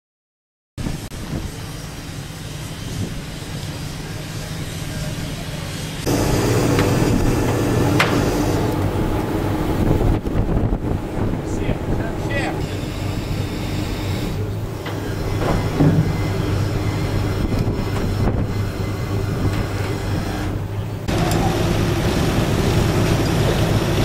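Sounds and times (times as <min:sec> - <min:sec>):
crane engine running: 0:01.2 - 0:24.0
men's voices: 0:11.3 - 0:13.0.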